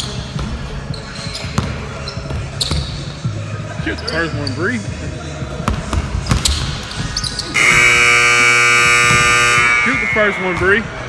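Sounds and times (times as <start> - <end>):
gym clock buzzer: 7.6 - 10.8.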